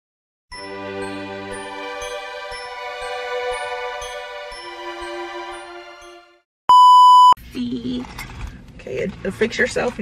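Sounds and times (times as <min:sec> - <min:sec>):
soft intro music: 0:00.5 - 0:06.4
loud electronic beep: 0:06.7 - 0:07.4.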